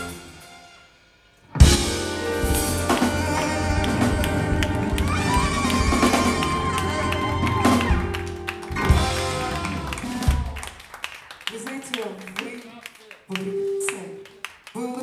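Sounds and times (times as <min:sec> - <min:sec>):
trumpet and saxophone notes: 0:00.0 - 0:10.6
live band playing: 0:00.0 - 0:12.6, 0:13.2 - 0:14.5
people clapping: 0:02.7 - 0:15.0.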